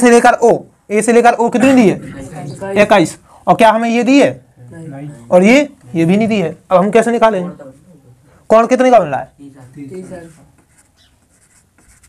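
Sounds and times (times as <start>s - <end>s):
marker writing on whiteboard: 9.8s - 12.0s.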